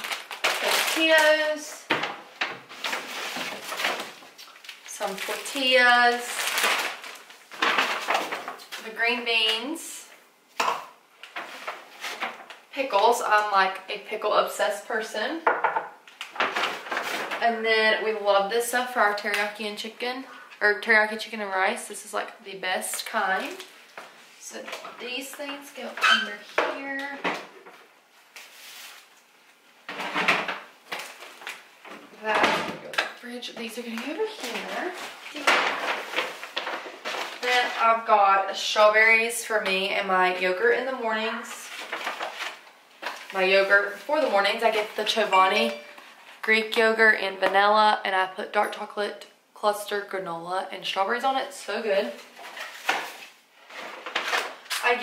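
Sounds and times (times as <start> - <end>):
packaging rustling: 0.0 - 9.0, 30.5 - 32.2, 33.8 - 38.0, 41.4 - 46.4, 52.2 - 55.0.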